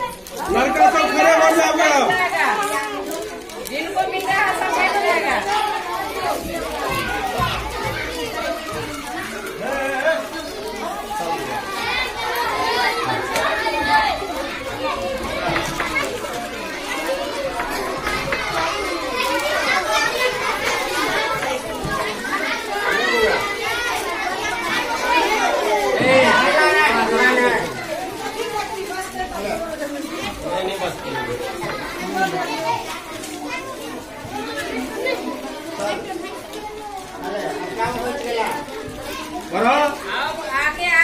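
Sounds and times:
children talking: 0.0s - 41.0s.

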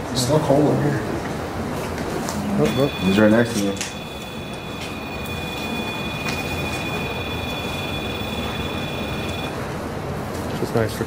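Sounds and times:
electronic alarm tone: 2.5s - 9.6s.

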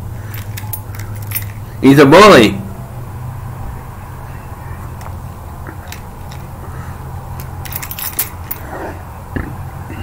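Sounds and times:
steady low hum: 0.0s - 10.0s
man speaking: 1.8s - 2.8s.

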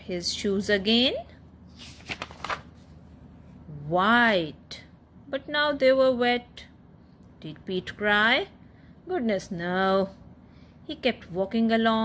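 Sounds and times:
paper page turning: 1.7s - 3.0s.

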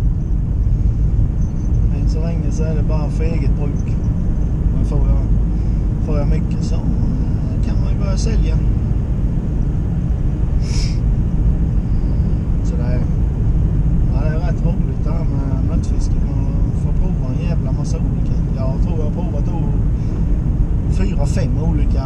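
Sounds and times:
road and engine rumble in car: 0.0s - 22.0s.

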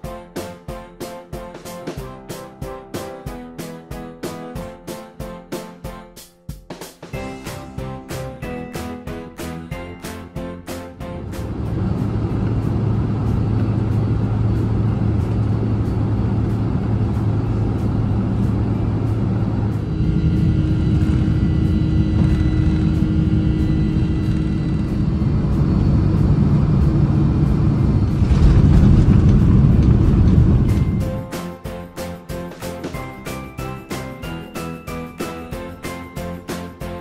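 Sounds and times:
jet engine rumble in cabin: 11.2s - 31.2s.

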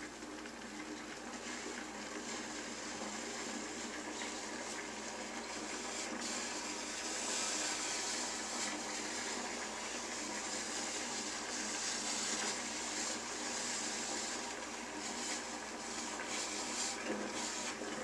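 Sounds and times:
steamer hissing: 1.3s - 18.0s.

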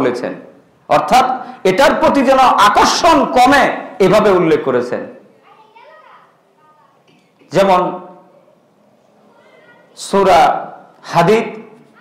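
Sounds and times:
man speaking: 0.0s - 5.2s, 10.0s - 11.8s
faint high child's voice: 5.4s - 7.1s, 9.2s - 10.0s, 11.8s - 12.0s.

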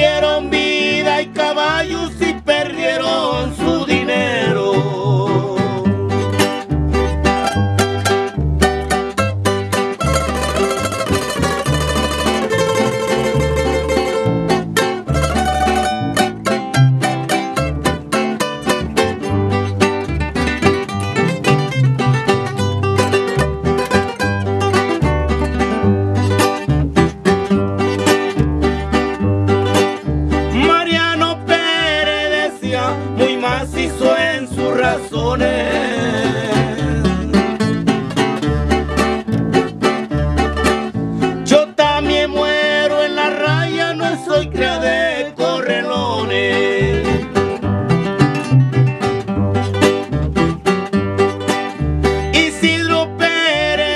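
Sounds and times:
bass line: 0.0s - 53.9s
plucked string instruments: 0.0s - 53.9s.

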